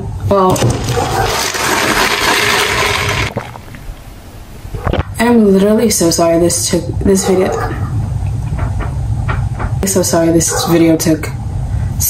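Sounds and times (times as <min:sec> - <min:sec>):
slurping through a straw: 0:00.8 - 0:04.7.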